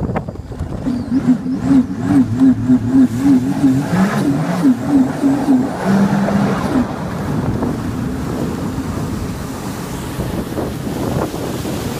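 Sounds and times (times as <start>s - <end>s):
water rushing past hull: 0.0s - 11.9s
wind buffeting microphone: 0.0s - 11.9s
jet ski engine revving: 0.2s - 11.9s.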